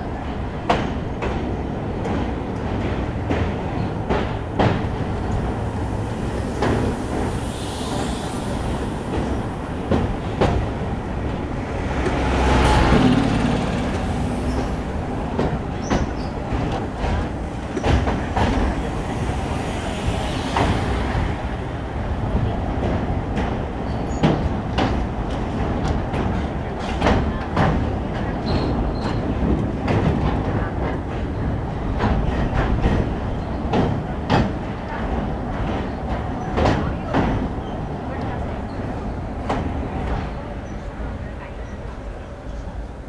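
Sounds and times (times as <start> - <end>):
train wheels rumbling on rails: 0.0 - 43.0
clicks and clanks on bridge: 0.2 - 5.5, 9.1 - 18.9, 22.8 - 40.9.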